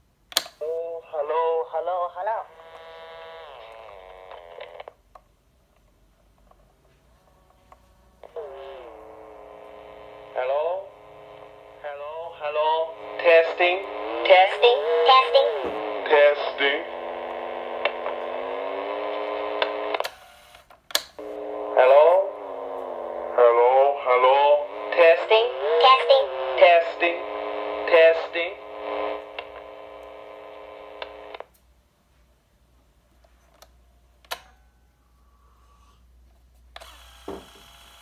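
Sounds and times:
clicks: 0.3s - 0.7s, 16.9s - 21.4s, 27.9s - 31.7s, 33.2s - 34.7s
recorded voice through small speaker: 0.6s - 2.8s, 10.1s - 19.6s, 21.3s - 31.3s
tape playback tone sliding down: 2.4s - 4.9s, 7.2s - 31.5s, 36.8s - 38.0s.

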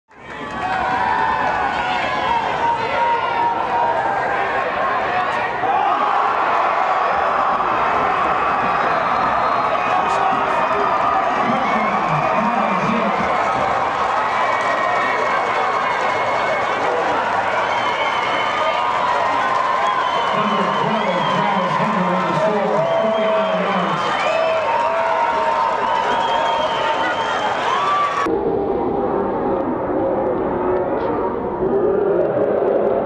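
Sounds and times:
stadium crowd cheering and shouting: 0.1s - 33.0s.

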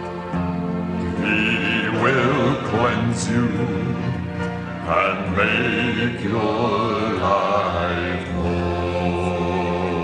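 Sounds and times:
male choir singing gospel: 1.0s - 10.0s.

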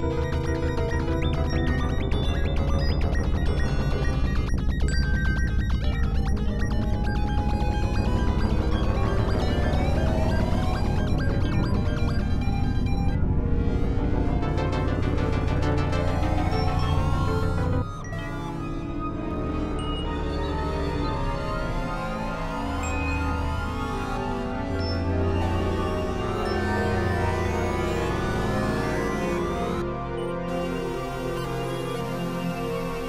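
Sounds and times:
electronic synthesizer music: 0.0s - 33.0s.

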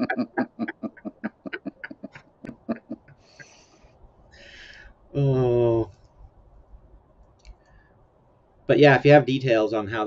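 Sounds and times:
man laughing breathily: 0.0s - 3.7s
short breaths: 3.1s - 5.1s, 7.6s - 8.1s.

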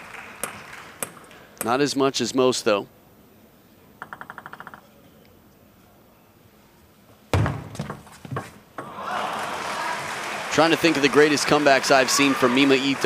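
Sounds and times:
crowd applause and cheering: 0.0s - 1.4s, 8.8s - 13.0s
table tennis ball bouncing: 0.4s - 1.8s, 4.0s - 4.8s.

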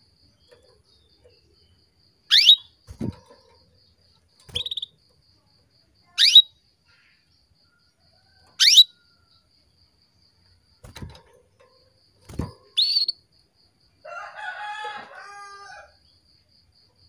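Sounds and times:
canary tweets: 0.2s - 5.3s, 6.0s - 9.5s, 10.5s - 13.4s.

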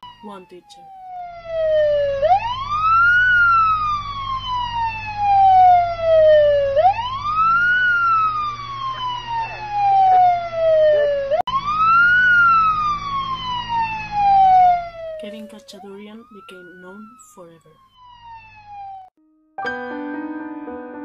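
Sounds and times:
emergency siren wailing: 0.0s - 19.1s.

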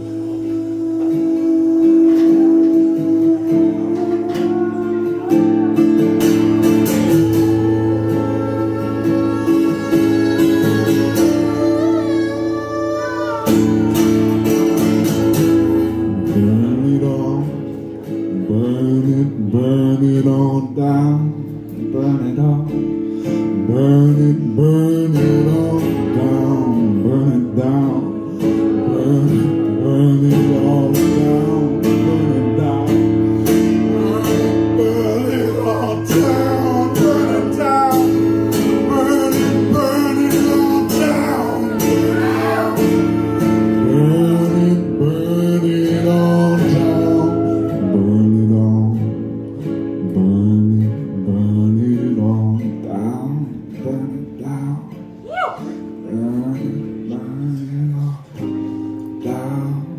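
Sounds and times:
acoustic guitar strumming: 0.0s - 59.9s
person singing: 0.0s - 59.9s.

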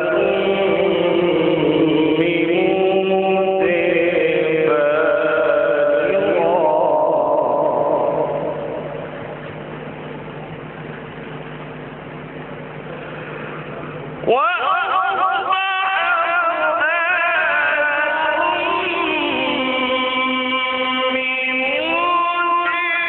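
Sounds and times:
man reciting melodically: 0.0s - 8.9s, 14.2s - 23.0s.

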